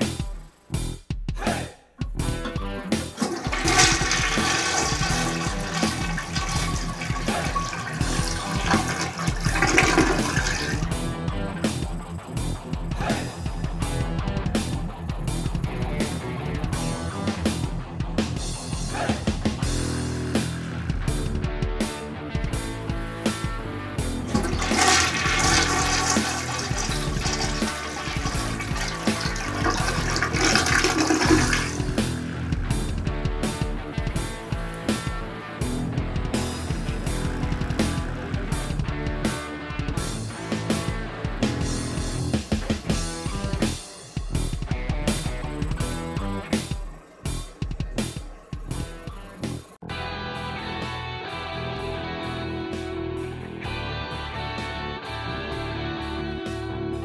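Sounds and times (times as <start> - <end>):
background guitar music: 2.0 - 57.0
toilet flushing: 2.4 - 12.6, 24.1 - 32.9, 36.4 - 38.4, 40.2 - 44.0.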